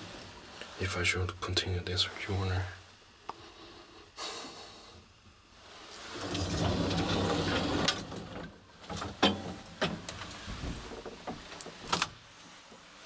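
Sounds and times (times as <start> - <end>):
elevator humming: 6.0 - 10.3.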